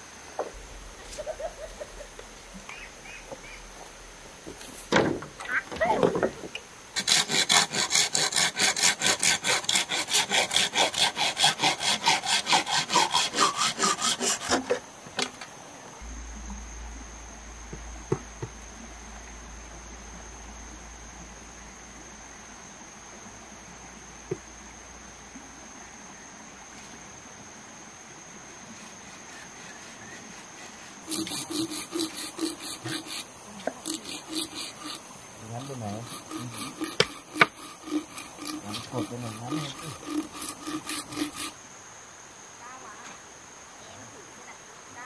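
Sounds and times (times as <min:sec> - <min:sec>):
high-pitched insect drone: 0:00.0 - 0:04.3, 0:16.0 - 0:26.6, 0:28.2 - 0:41.7
digging tool scraping wet soil: 0:29.0 - 0:41.6.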